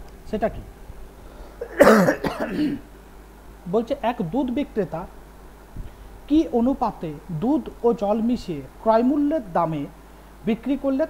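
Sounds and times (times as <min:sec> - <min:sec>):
man clearing throat: 0:01.6 - 0:02.9
man coughing: 0:01.6 - 0:02.9.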